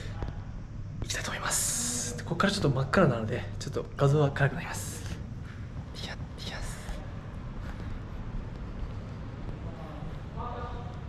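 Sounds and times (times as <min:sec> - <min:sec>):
man speaking quietly: 0:00.0 - 0:05.3, 0:05.9 - 0:07.9, 0:09.6 - 0:11.0
steady low hum: 0:00.0 - 0:11.0.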